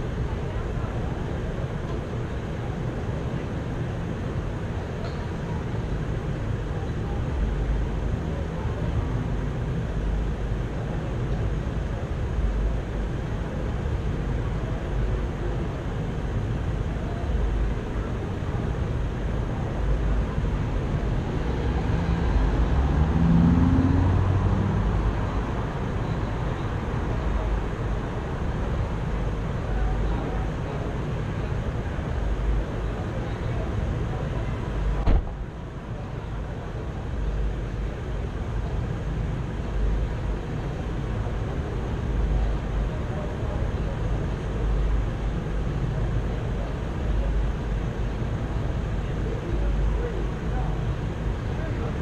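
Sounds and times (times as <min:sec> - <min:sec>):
vehicle engine rumbling: 0:00.0 - 0:52.0.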